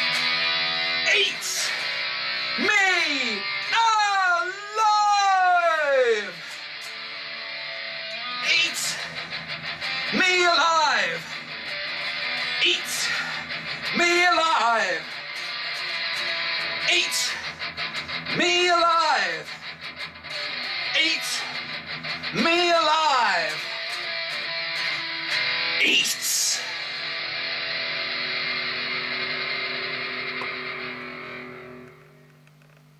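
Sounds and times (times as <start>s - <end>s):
distorted electric guitar: 0.0s - 32.9s
person singing: 12.4s - 15.2s.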